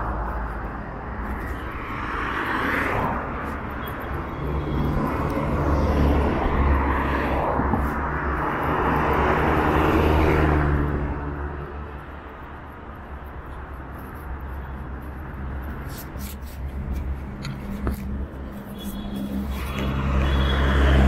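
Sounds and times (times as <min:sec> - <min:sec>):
bus passing: 0:00.0 - 0:21.0
cars passing: 0:00.0 - 0:21.0.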